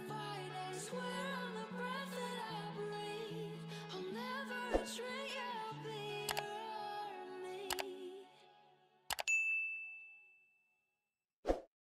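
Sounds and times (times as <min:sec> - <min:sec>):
background song: 0:00.0 - 0:08.9
mouse click sound effects: 0:06.3 - 0:06.5, 0:07.7 - 0:07.9, 0:09.1 - 0:09.4
bright bell ding: 0:09.2 - 0:10.6.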